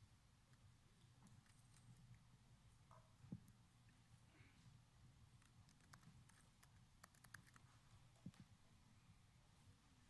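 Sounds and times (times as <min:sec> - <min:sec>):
laptop keyboard typing clicks: 0:05.4 - 0:07.6.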